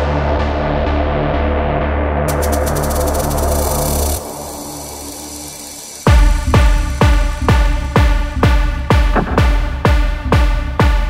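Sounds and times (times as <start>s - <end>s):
buzzy hissing synth texture: 2.3s - 9.5s
kick drum and bass: 6.0s - 11.0s.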